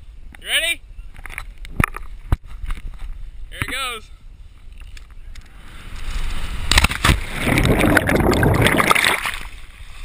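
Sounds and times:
wind rushing over microphone: 5.8 - 9.5
hard splash into water: 6.7 - 9.6
underwater bubbling water: 7.3 - 9.5.

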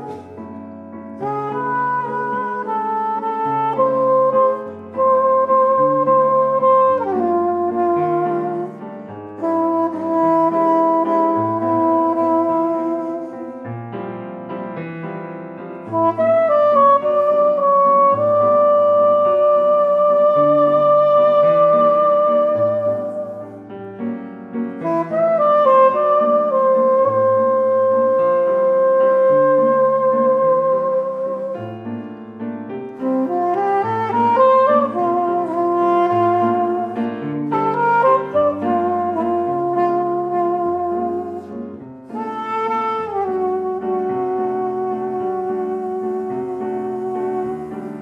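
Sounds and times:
soprano saxophone melody: 0.0 - 14.4, 15.8 - 24.0, 24.7 - 48.0
piano accompaniment: 0.0 - 48.0.

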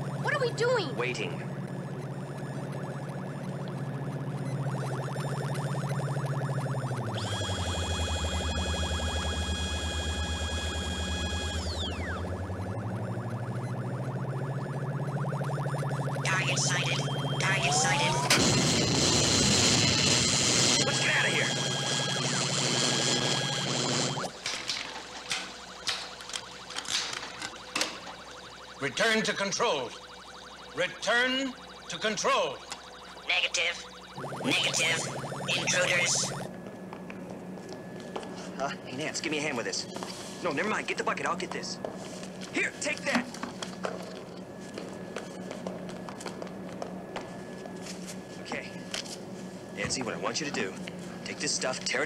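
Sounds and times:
held high synth tones: 0.0 - 36.5
low electronic drone: 0.0 - 36.6.

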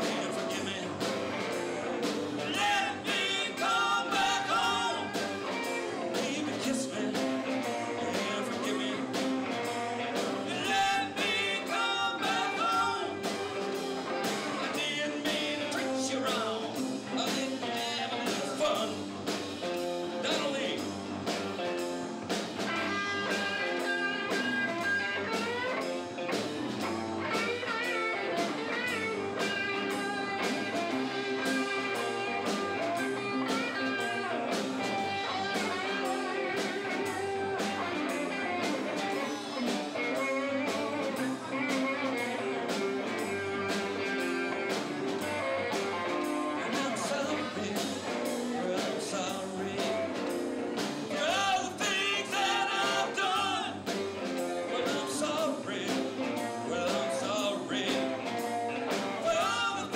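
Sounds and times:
bass guitar: 0.0 - 59.9
drum kit beat: 0.0 - 59.9
electric guitars bending notes: 0.0 - 59.9.

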